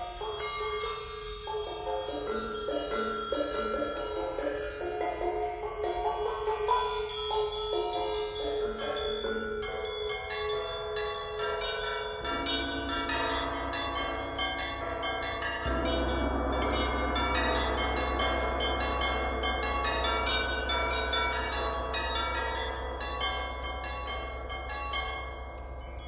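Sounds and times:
bells bowls and gongs ringing: 0.0s - 26.0s
deep sustained low rumble: 15.6s - 25.9s.

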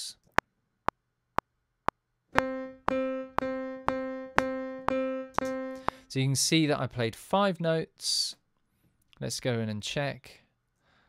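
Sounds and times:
metronome clicks: 2.4s - 6.0s
piano notes: 2.4s - 6.2s.

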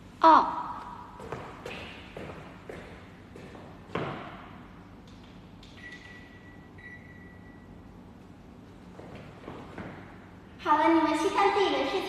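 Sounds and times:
sharp thump echoing in room: 0.6s - 4.7s, 9.0s - 10.4s.

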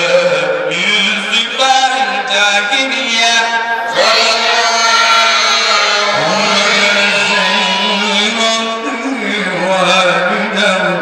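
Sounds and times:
man chanting: 0.0s - 11.0s
second voice singing: 3.8s - 11.0s.

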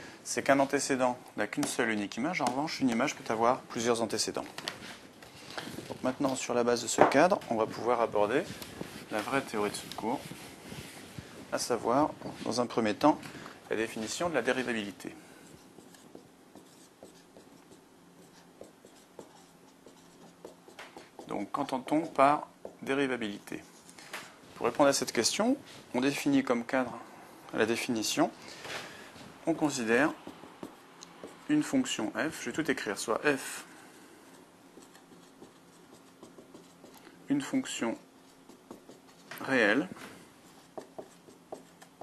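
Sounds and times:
marker writing on whiteboard: 1.6s - 1.8s, 13.8s - 23.9s, 29.5s - 33.6s, 34.2s - 42.0s.

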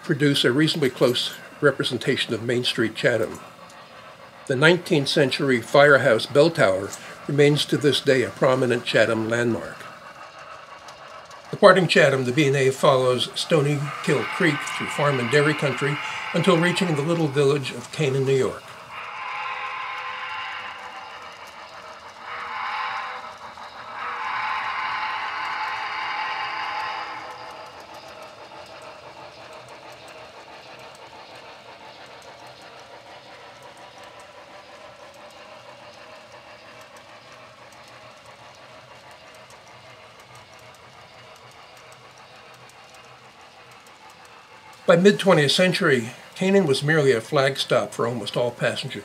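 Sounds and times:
model steam locomotive whistle: 0.0s - 3.4s, 4.5s - 9.9s, 11.5s - 28.8s, 44.9s - 49.0s
model train running: 0.0s - 49.0s.

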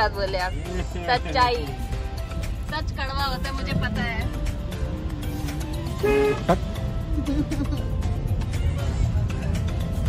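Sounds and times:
car driving rumble: 0.0s - 10.0s
car horn toot: 5.9s - 6.8s.

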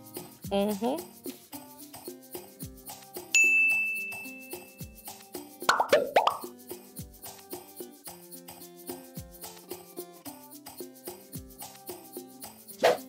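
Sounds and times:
background music with steady beat: 0.0s - 13.0s
bright ding: 3.4s - 4.8s
falling plop sound effects: 5.7s - 6.5s.

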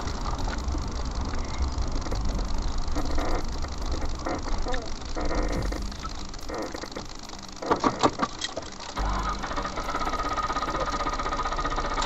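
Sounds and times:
car engine cranking: 0.0s - 12.0s.

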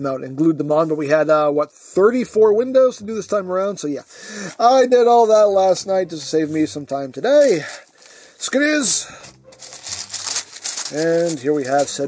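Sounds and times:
packing paper rustling: 7.4s - 12.0s.

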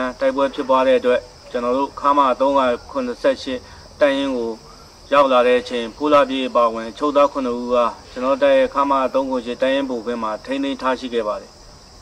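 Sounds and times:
man speaking: 0.0s - 11.6s
insects chirring: 0.0s - 12.0s.

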